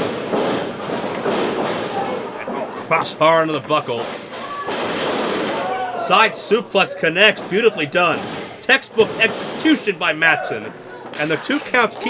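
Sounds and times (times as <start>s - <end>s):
crowd noise in a hall: 0.0s - 12.0s.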